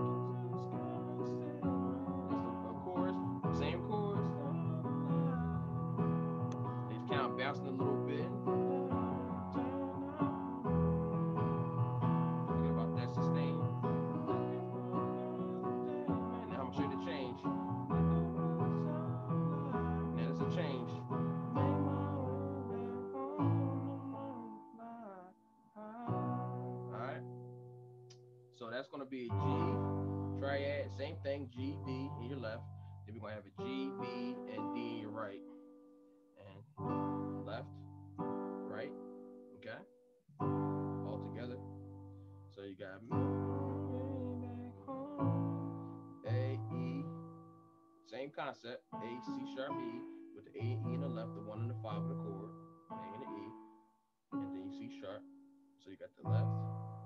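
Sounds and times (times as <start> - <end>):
electronic keyboard chords: 0.0 - 28.2, 29.2 - 32.8, 33.4 - 35.6, 36.6 - 39.8, 40.4 - 47.8, 48.9 - 53.8, 54.4 - 55.4, 56.2 - 57.0.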